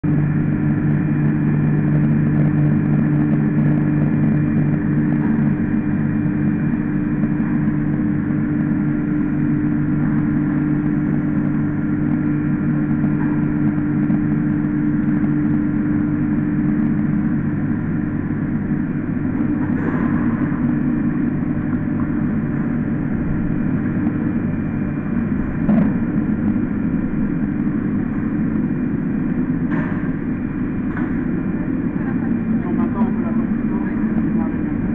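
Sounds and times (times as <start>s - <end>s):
grinding machine humming: 0.0s - 34.9s.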